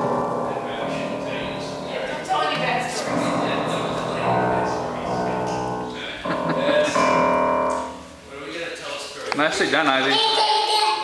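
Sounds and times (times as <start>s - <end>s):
piano chord ringing: 0.0s - 8.6s.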